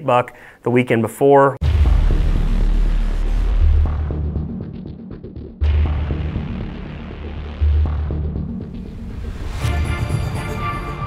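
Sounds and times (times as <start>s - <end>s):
music with deep bass drone: 1.6s - 11.0s.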